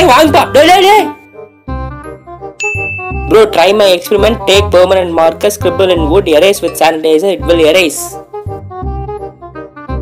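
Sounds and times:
tinkling stepping notes: 0.8s - 4.4s
bright ringing ding: 2.6s - 3.5s.

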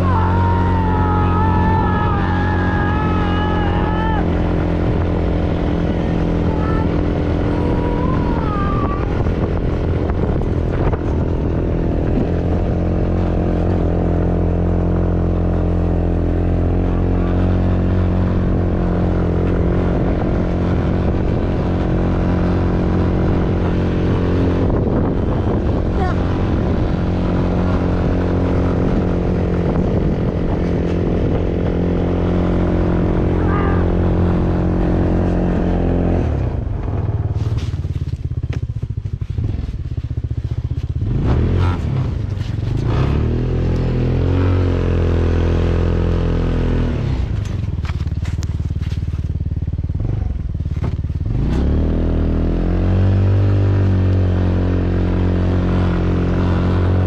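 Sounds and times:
go-kart engine running: 0.0s - 57.0s.

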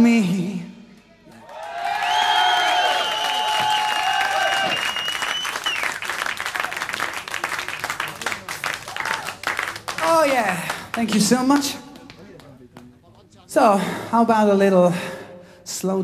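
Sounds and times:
audience shouting and cheering: 1.3s - 7.2s
audience clapping: 1.3s - 13.2s
whistle from audience: 1.8s - 6.2s.

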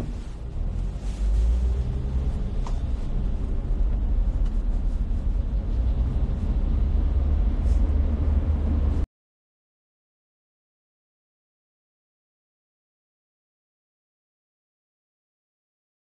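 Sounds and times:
car road and engine rumble: 0.0s - 9.1s.

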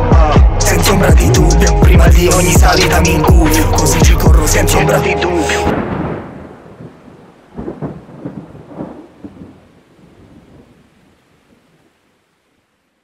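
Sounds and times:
low rolling rumble with crackling: 5.7s - 12.5s.

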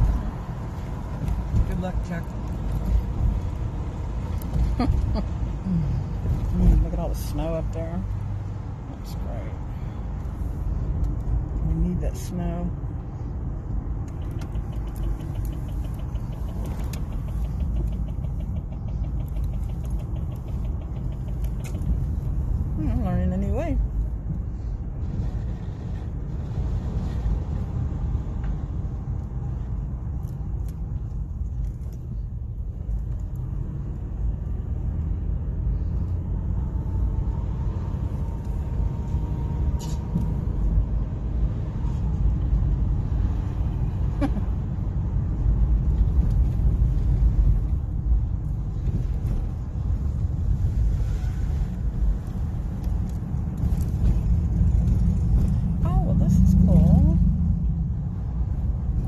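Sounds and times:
road and engine rumble in car: 0.0s - 59.0s.

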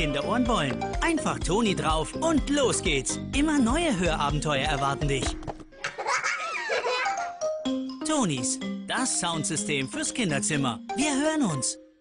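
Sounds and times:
light background music: 0.0s - 5.8s, 6.9s - 12.0s
children laughing: 5.8s - 7.4s.

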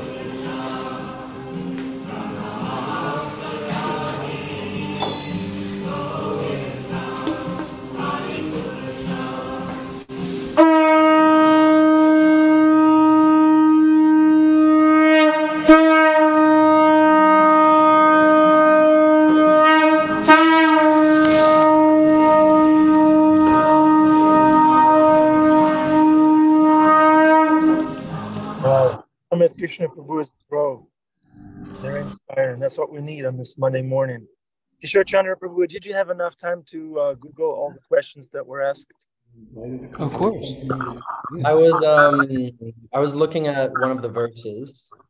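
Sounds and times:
devotional singing: 0.0s - 10.1s, 27.6s - 29.0s
conch shell blast: 10.6s - 28.0s.

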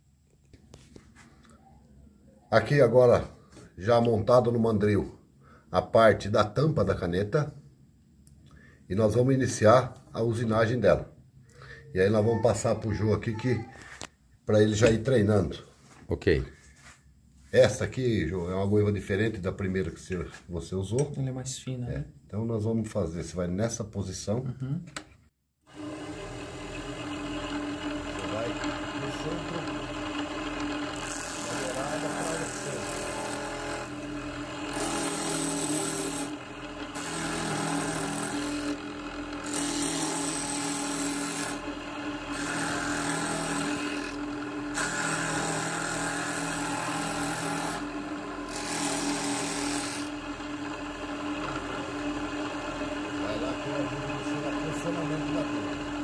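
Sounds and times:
wood lathe motor hum: 25.7s - 56.0s
gouge scraping wood: 48.5s - 50.1s.

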